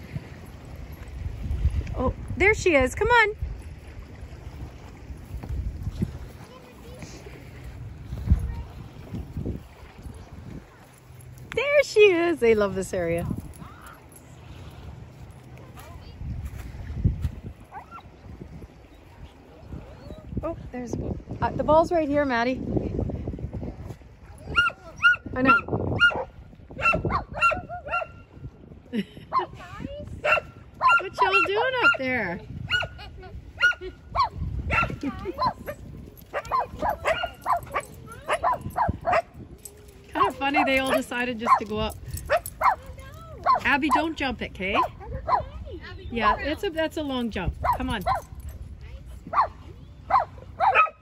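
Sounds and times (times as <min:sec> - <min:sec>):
dog barking: 0:24.5 - 0:28.2, 0:30.2 - 0:32.0, 0:32.7 - 0:33.0, 0:33.6 - 0:39.4, 0:40.2 - 0:41.7, 0:42.3 - 0:42.8, 0:43.4 - 0:43.7, 0:44.8 - 0:45.5, 0:49.3 - 0:51.0.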